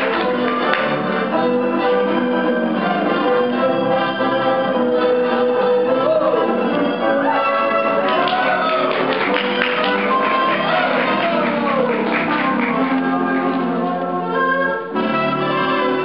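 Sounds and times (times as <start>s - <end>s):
layered instrumental music: 0.0s - 16.0s.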